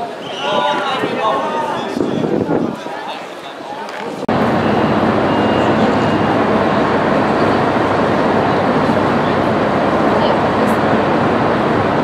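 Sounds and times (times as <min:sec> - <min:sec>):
train station din: 0:00.0 - 0:12.0
faint high whine: 0:04.3 - 0:12.0.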